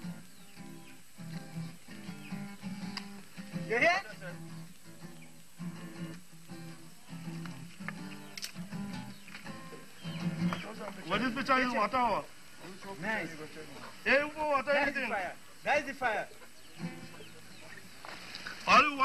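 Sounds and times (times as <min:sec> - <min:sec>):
acoustic guitar plucked: 0:00.0 - 0:10.9, 0:16.8 - 0:17.4
man calling out: 0:03.6 - 0:04.4, 0:11.1 - 0:16.4, 0:18.7 - 0:19.0.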